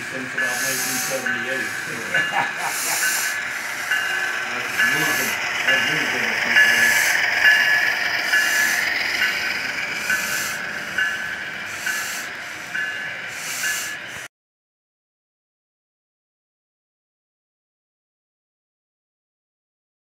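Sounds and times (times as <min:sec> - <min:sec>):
model train cars rumbling on rails: 0:00.0 - 0:14.3
model train ringing tone: 0:00.0 - 0:14.3
bursts of hiss: 0:00.5 - 0:02.0, 0:11.7 - 0:14.3.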